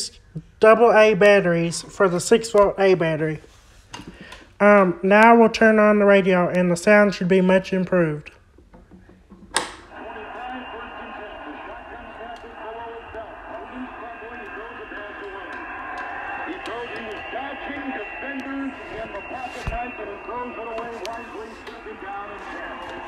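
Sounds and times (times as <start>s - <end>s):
narrow-band voice talking on radio: 9.9s - 23.0s.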